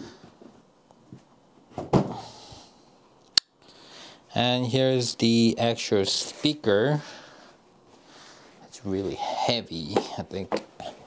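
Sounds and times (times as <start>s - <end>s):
cardboard box thump: 1.8s - 2.2s.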